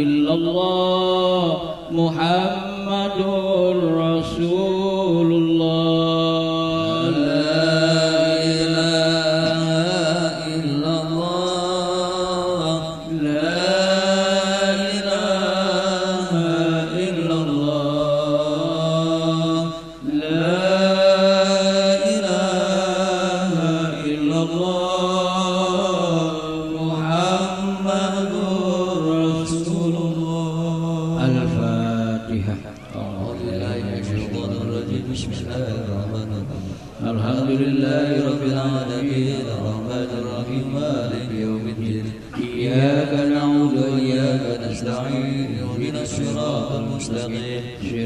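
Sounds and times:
man chanting a prayer: 0.0 - 48.0.

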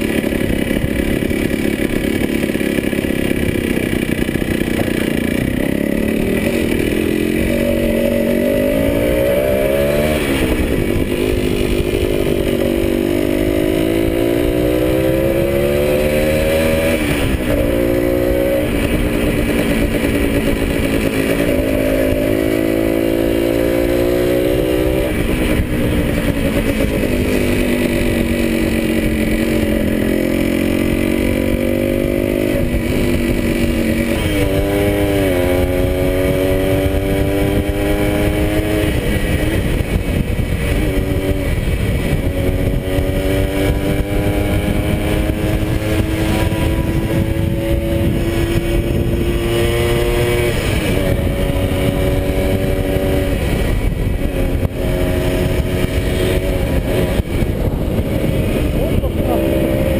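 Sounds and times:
motorcycle engine revving through gears: 0.0 - 59.9
wind on microphone: 0.0 - 59.9.

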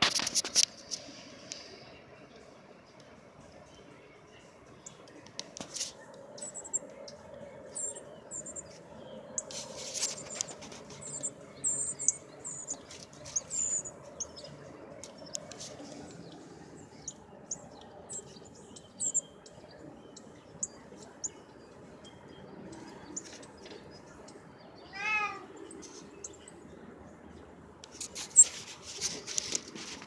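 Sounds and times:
bird chip calls: 9.4 - 14.5
rustling clatter: 27.9 - 30.0.

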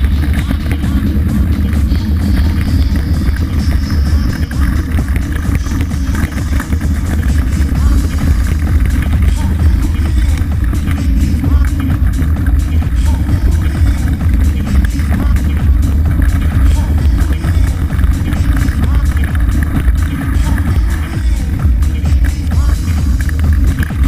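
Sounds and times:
bike tyres rolling on gravel: 0.0 - 24.0.

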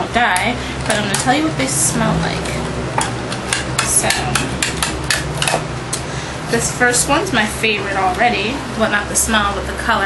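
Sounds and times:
steady low hum: 0.0 - 10.0
sharp clicks and taps: 2.4 - 6.0.

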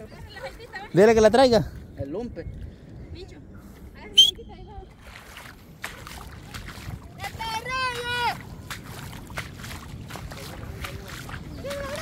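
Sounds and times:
wading through shallow water: 0.0 - 12.0
wind rumble on microphone: 0.0 - 12.0.

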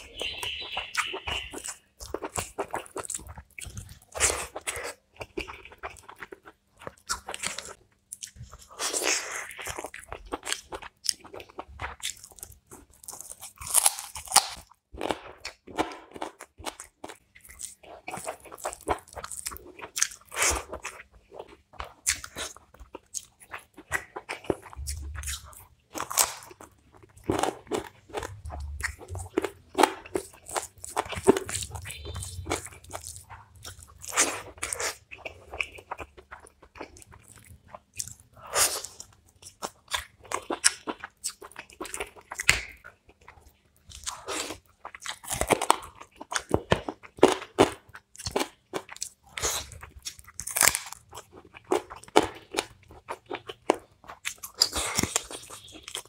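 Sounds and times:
crunchy bites: 0.0 - 42.8, 43.9 - 56.0
man chewing food: 0.0 - 56.0.

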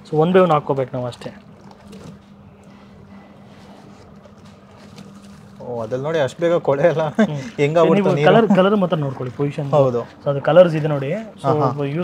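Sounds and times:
washing machine motor humming: 0.0 - 12.0.

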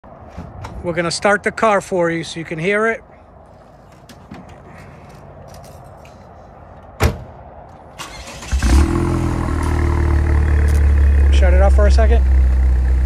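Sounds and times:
sharp thump: 7.0 - 7.4
car engine cranking and idling: 7.8 - 13.0.

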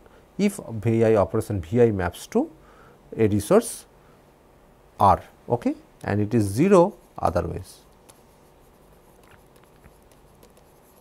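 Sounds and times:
low room hiss: 0.0 - 11.0
stylus scratching and tapping: 7.8 - 11.0.

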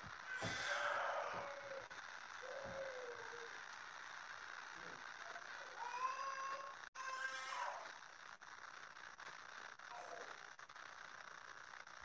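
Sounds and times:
faint pitched vocal calls: 0.4 - 3.7.

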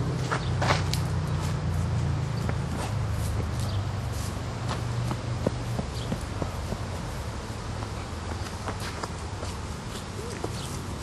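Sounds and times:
footsteps on dirt and grass: 0.1 - 11.0.

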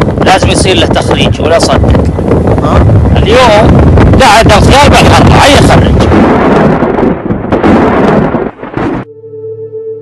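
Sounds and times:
wind: 0.0 - 9.0
thunder rumbling: 0.0 - 9.1.

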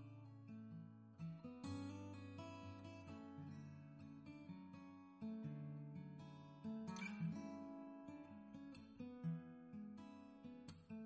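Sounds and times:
gentle acoustic guitar: 0.0 - 11.0.

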